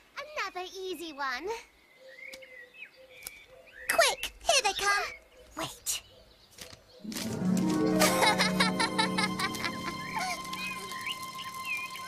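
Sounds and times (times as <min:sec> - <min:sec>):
birds chirping softly: 0:00.2 - 0:07.1.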